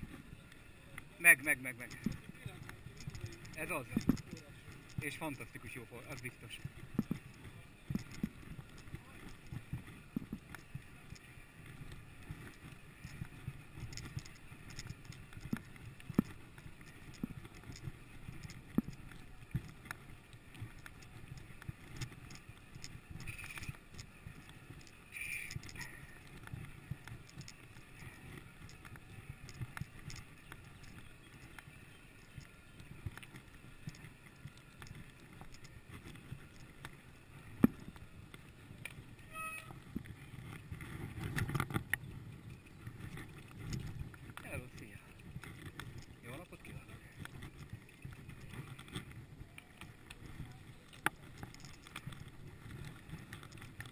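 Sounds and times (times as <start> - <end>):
bike knocking and rattling: 0.0 - 53.9
bike tyres rumbling on dirt: 0.0 - 53.9
brief ringing tone: 39.3 - 39.8.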